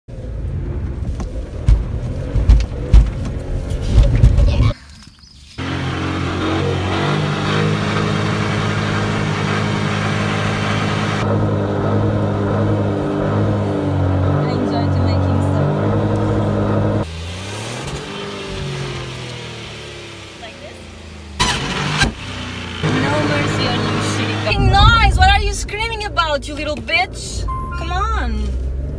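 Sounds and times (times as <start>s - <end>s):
car engine revving: 5.6s - 28.9s
irregular rumble: 20.4s - 28.9s.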